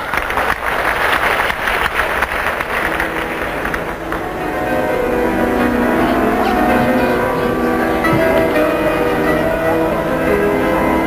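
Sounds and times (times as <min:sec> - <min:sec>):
audience applauding: 0:00.0 - 0:09.4
steady musical tones: 0:02.3 - 0:11.0.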